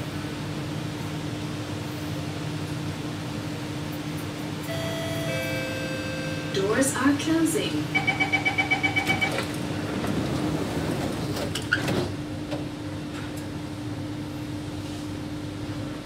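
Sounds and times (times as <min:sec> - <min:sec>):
train hum: 0:00.0 - 0:16.0
rapid warning beeps: 0:07.9 - 0:09.4
train doors knocking shut: 0:08.6 - 0:12.7.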